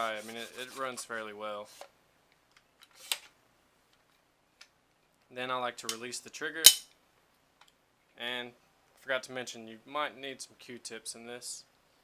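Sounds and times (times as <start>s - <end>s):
sharp metal click: 6.6s - 6.9s.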